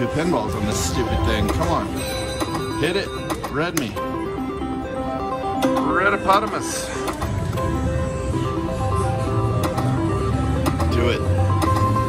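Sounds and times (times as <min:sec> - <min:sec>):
slot machine electronic tune: 0:00.0 - 0:12.0.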